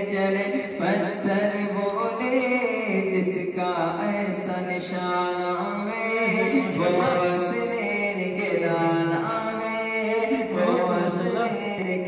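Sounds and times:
man chanting unaccompanied: 0.0s - 12.0s.

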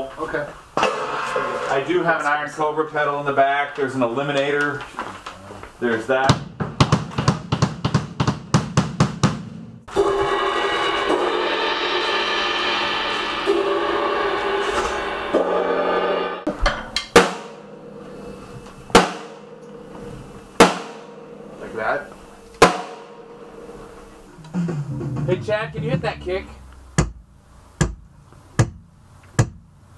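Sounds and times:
drum strokes: 0.8s - 2.1s, 6.3s - 29.6s
cymbals ringing: 9.9s - 16.5s, 17.1s - 27.0s.

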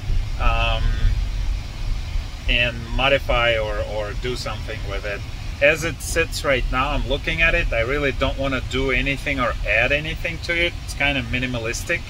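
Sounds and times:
low rumble inside car cabin: 0.0s - 12.0s
man saying uh: 0.4s - 1.2s, 2.5s - 12.0s.

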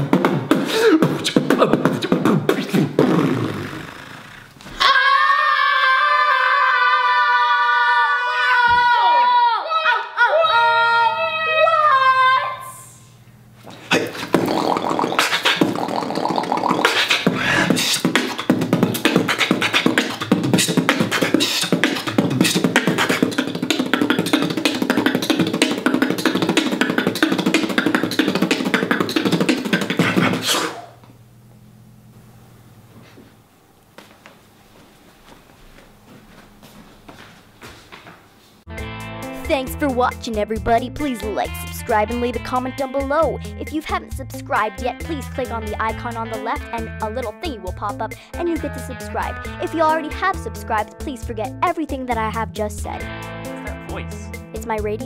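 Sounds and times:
human beatboxing: 0.0s - 4.6s, 13.7s - 31.0s, 40.8s - 52.8s, 53.8s - 55.0s
voices holding high shout: 4.8s - 12.6s
continuous low hum: 9.7s - 38.7s.

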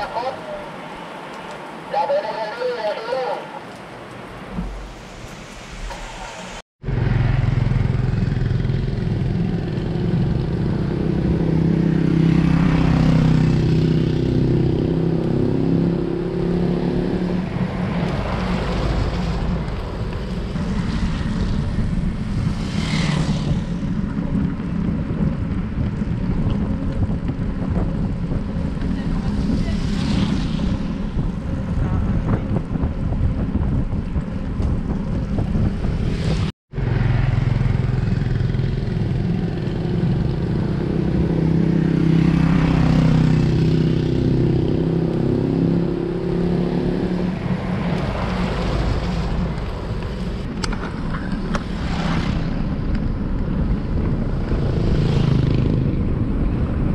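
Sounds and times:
wet road noise: 0.0s - 56.9s
wind rush: 4.4s - 56.9s
motorcycle engine passing: 18.2s - 24.8s, 35.5s - 52.8s, 54.1s - 56.7s.

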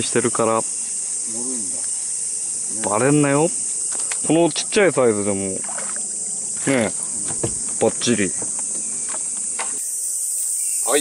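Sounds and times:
cicadas chorus: 0.0s - 11.0s.

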